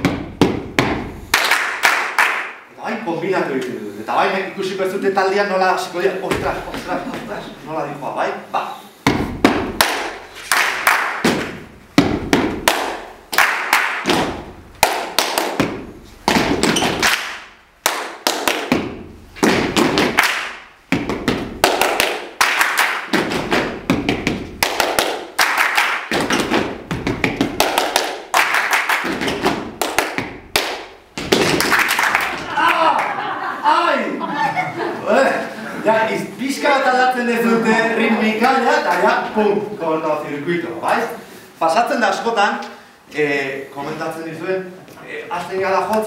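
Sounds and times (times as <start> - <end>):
hand claps: 0.0 - 2.6, 9.4 - 33.1
foot stamps on a hard floor: 9.0 - 9.8, 23.1 - 24.6, 26.1 - 27.6, 31.1 - 31.6.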